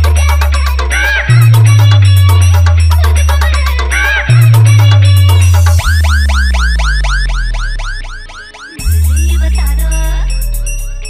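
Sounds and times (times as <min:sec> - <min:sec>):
deep humming bass: 0:00.0 - 0:11.0
siren-like synth chirp: 0:04.7 - 0:11.0.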